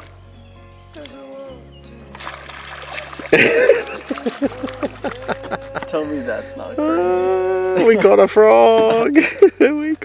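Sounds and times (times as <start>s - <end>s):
splash on pond surface: 2.0s - 5.6s
plops and gurgles in water: 2.1s - 5.4s.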